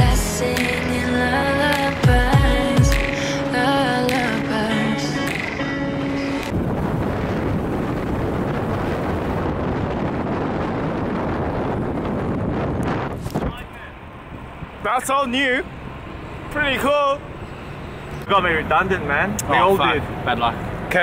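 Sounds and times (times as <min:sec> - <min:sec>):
background music: 0:00.0 - 0:06.6
wind buffeting microphone: 0:06.2 - 0:15.0.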